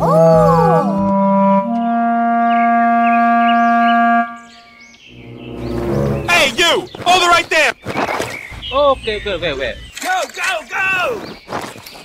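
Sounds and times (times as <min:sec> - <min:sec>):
horn-like wind instrument note: 0:01.0 - 0:06.9.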